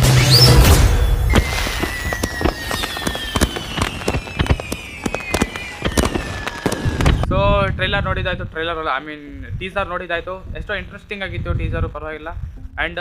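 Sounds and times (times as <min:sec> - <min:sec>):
high tone falling in pitch: 0:00.0 - 0:07.2
firecracker crackling: 0:00.3 - 0:07.3.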